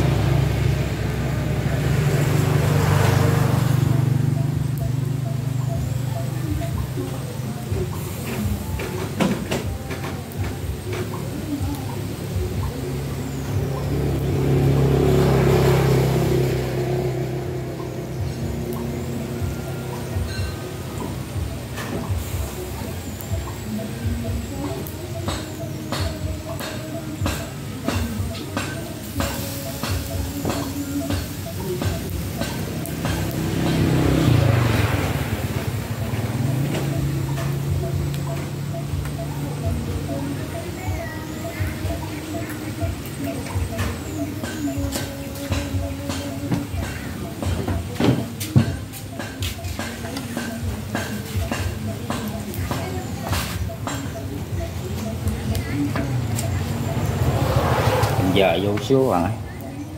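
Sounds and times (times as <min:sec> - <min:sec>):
passing vehicle: 0:00.0 - 0:08.7, 0:09.6 - 0:48.9, 0:51.6 - 0:59.9
snails crackling on charcoal grill: 0:00.0 - 0:59.9.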